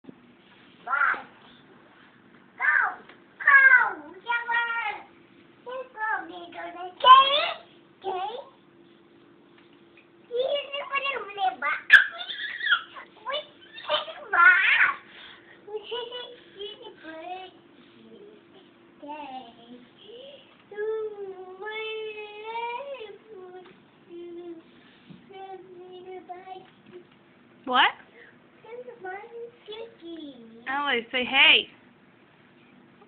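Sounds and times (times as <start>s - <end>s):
child squealing: 11.9s - 12.9s
child sing-song vocal sounds: 15.7s - 27.0s.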